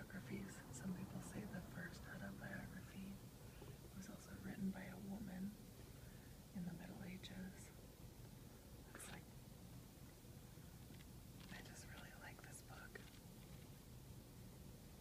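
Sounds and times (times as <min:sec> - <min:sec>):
person whispering: 0:00.0 - 0:03.2, 0:03.9 - 0:05.6, 0:06.6 - 0:07.8, 0:08.9 - 0:09.2, 0:11.5 - 0:13.2.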